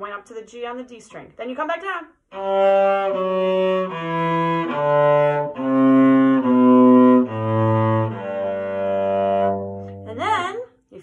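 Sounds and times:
cello bowing descending scale: 2.3 - 10.4.

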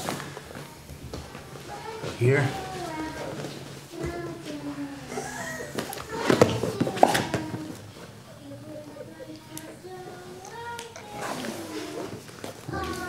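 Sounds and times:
low voices talking: 0.4 - 13.0.

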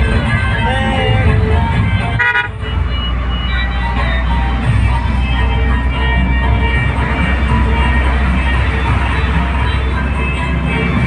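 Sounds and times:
road traffic rumble: 0.0 - 11.0
vehicle horn toot: 2.1 - 2.8.

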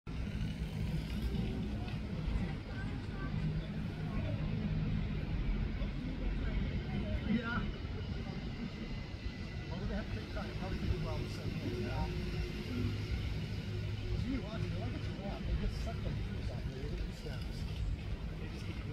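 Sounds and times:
distant voices: 0.1 - 18.9.

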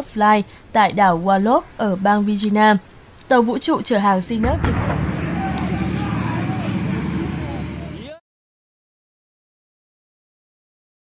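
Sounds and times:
rocket engine rumble: 4.4 - 8.2.

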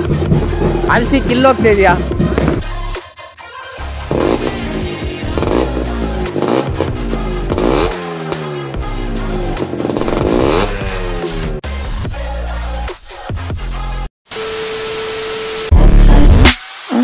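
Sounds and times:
motorcycle engine revving: 0.0 - 3.0, 3.9 - 11.6.

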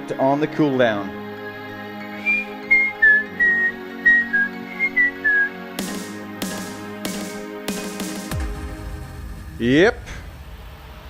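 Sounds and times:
background music: 0.0 - 11.0
person whistling a tune: 2.2 - 5.6
sharp noisy hits: 5.8 - 11.0.

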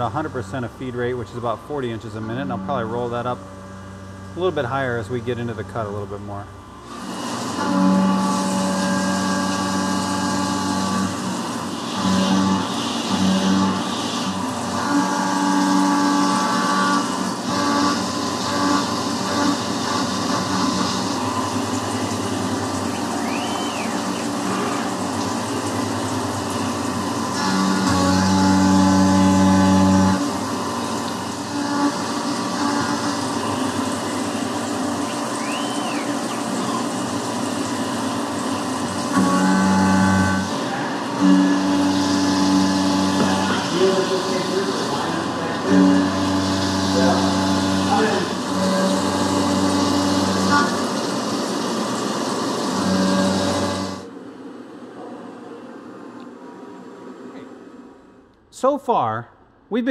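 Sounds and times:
milling machine cutting metal whine: 0.0 - 54.1.

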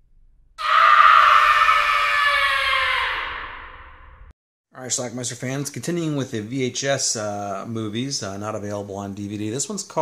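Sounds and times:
long scream falling in pitch: 0.6 - 4.3.

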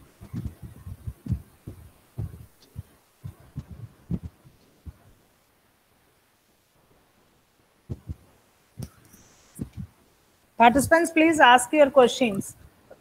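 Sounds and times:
short low thumps: 0.0 - 5.1, 7.9 - 8.2, 9.6 - 10.0.

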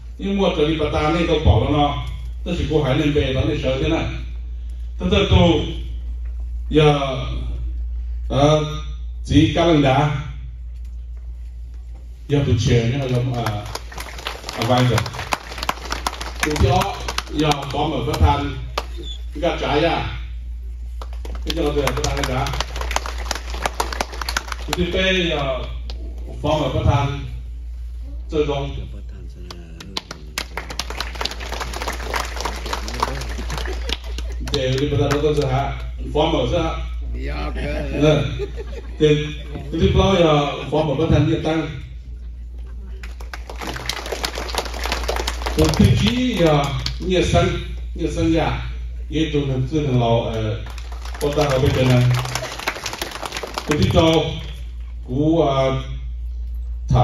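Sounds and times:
crowded banquet hall: 0.0 - 57.0
steady low hum: 0.0 - 57.0
audience clapping: 12.7 - 19.1, 20.9 - 26.2, 29.4 - 36.0, 43.0 - 47.0, 50.2 - 54.8.

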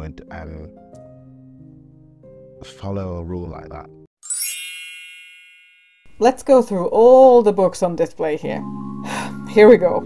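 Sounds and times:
high-pitched chime: 4.2 - 6.2.

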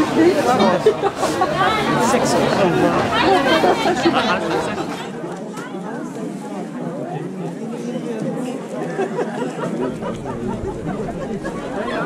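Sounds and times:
people chatting: 0.0 - 12.0
low background rumble: 9.8 - 12.0.

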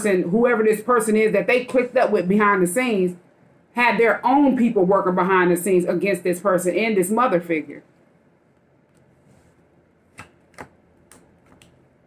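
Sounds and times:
cards being shuffled: 10.1 - 11.8.

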